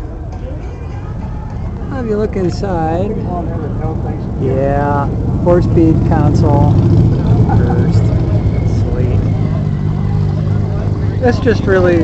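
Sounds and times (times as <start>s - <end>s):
engine idling: 0.6s - 12.0s.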